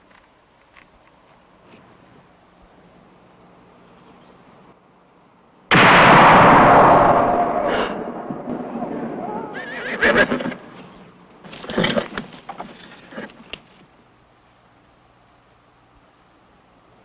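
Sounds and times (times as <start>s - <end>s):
sharp noises: 5.7s - 12.2s
horse whinnying: 9.2s - 10.7s.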